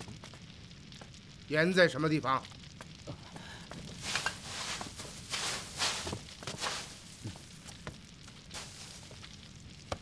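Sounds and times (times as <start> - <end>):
dry straw rustling: 3.9 - 7.7, 8.5 - 9.3.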